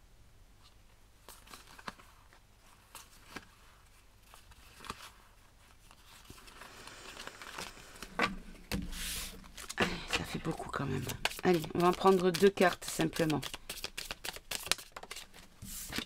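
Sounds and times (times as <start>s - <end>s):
cards in plastic sleeves shuffled: 8.9s - 16.0s.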